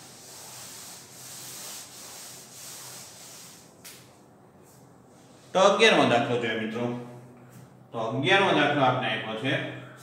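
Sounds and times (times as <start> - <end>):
cloth wiping a blackboard: 0.0 - 5.6.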